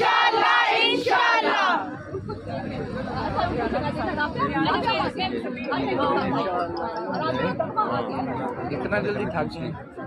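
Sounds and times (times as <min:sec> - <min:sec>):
women chattering: 0:00.9 - 0:08.9.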